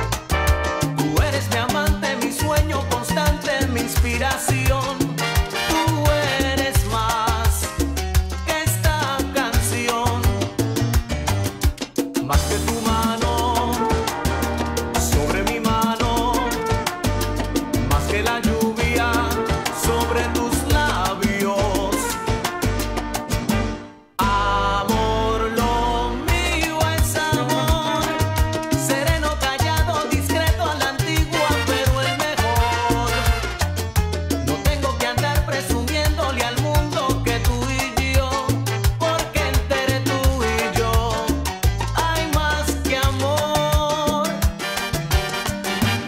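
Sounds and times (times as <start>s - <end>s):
salsa music: 0.0s - 46.0s.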